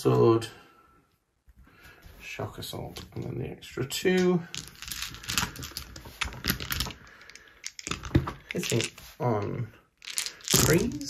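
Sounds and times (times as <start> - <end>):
plastic dice clicking together: 4.2 - 9.0, 10.0 - 11.0.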